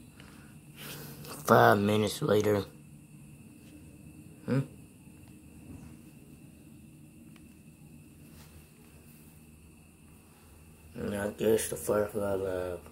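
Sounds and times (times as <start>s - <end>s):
faint high-pitched whine: 0.0s - 12.9s
person murmuring hmm: 4.4s - 4.8s.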